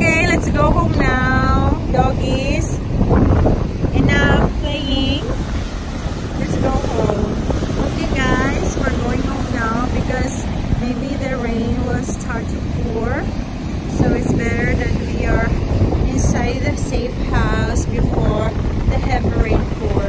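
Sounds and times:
breaking surf: 0.0s - 20.0s
wind buffeting microphone: 0.0s - 20.0s.

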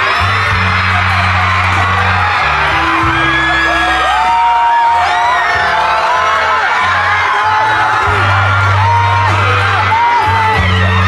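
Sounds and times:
music with held bass notes: 0.0s - 4.7s, 6.8s - 11.0s
crowd screaming and whooping: 0.0s - 11.0s.

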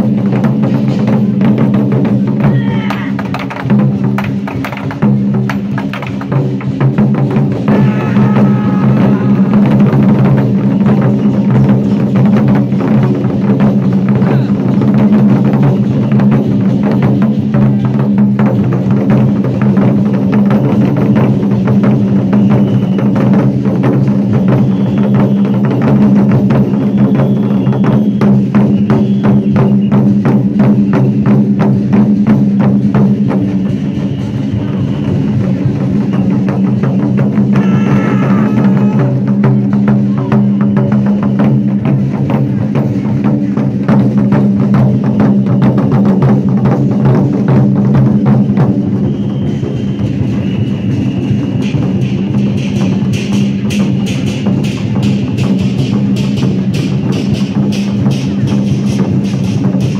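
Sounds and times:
barrel drums beaten fast: 0.0s - 59.9s.

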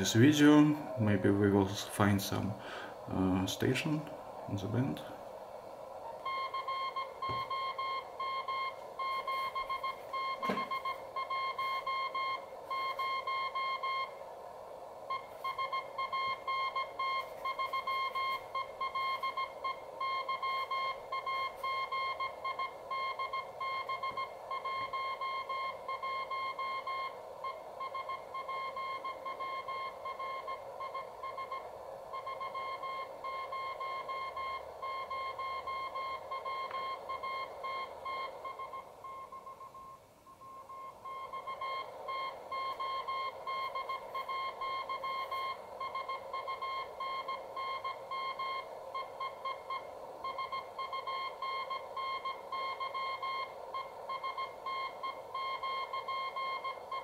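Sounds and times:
radio band hiss: 0.0s - 6.2s
morse code beeps: 6.2s - 14.1s, 15.1s - 57.0s.

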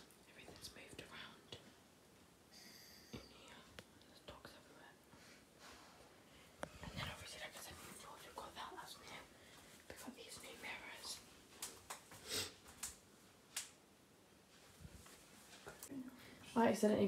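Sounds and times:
faint whispering: 0.2s - 1.7s, 3.1s - 5.0s, 6.6s - 11.3s.

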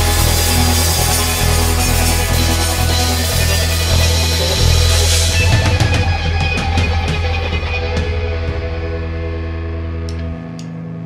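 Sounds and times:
drum kit: 0.0s - 10.3s
bass: 0.0s - 11.0s
electric guitar: 0.0s - 11.0s.

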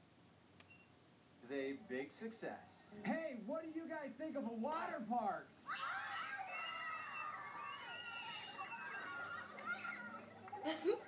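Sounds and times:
children cheering and screaming: 5.6s - 10.8s.

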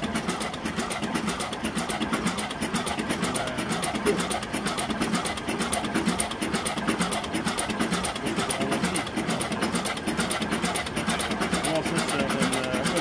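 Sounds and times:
diesel engine running: 0.0s - 13.0s.

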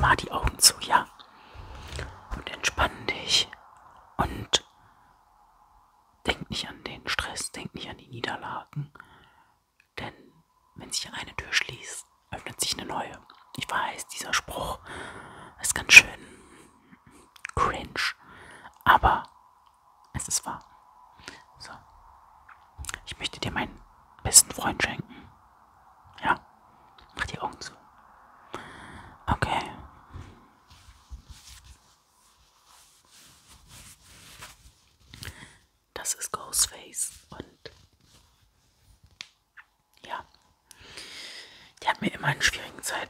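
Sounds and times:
man whispering: 0.0s - 5.5s, 6.2s - 31.6s, 35.2s - 38.3s, 39.6s - 43.0s
faint steady hum: 0.0s - 43.0s.

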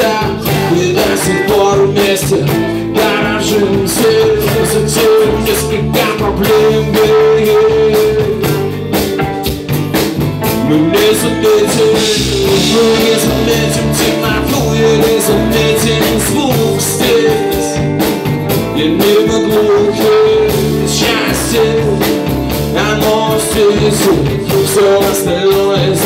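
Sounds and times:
live rock band playing: 0.0s - 26.0s.

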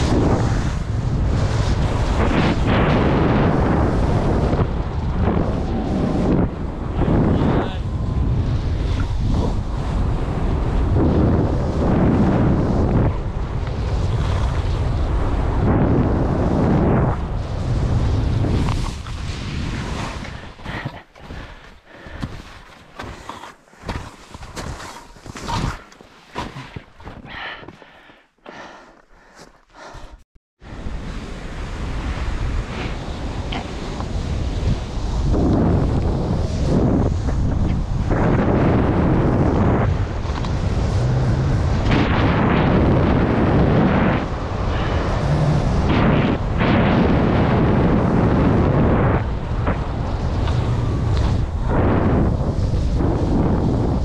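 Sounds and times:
wind buffeting microphone: 0.0s - 54.0s
skis running over snow: 17.6s - 30.0s.

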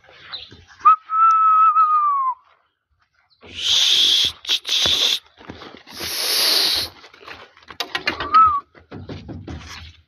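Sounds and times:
person whistling: 0.8s - 2.4s.

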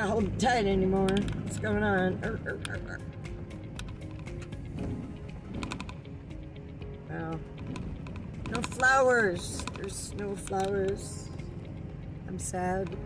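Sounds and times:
phone holder clicking and rattling: 1.0s - 1.8s, 2.6s - 4.8s, 5.4s - 6.4s, 7.6s - 11.4s
car rumbling on gravel road: 3.9s - 6.3s, 7.4s - 13.0s.

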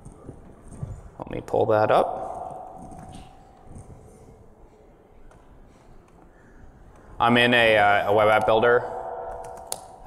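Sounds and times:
man speaking: 1.2s - 2.8s, 7.2s - 9.4s.

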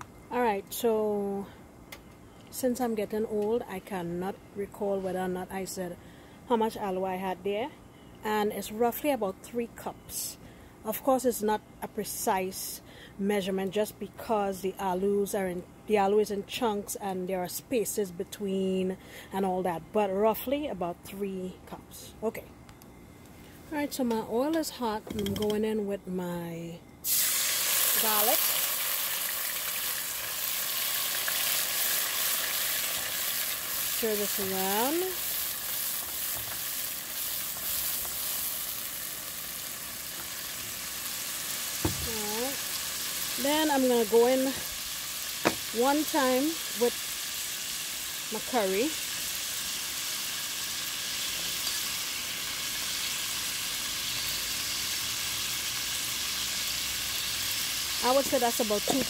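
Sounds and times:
garlic frying in hot oil: 27.0s - 59.0s.

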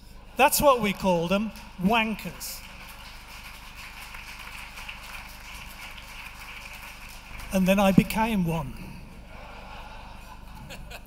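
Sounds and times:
large audience clapping: 0.9s - 8.5s
audience laughter: 9.2s - 11.0s.

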